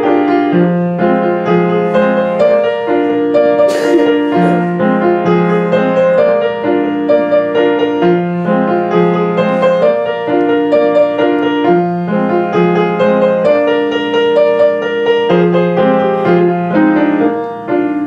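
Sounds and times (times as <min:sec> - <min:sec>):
solo piano: 0:00.0 - 0:18.0.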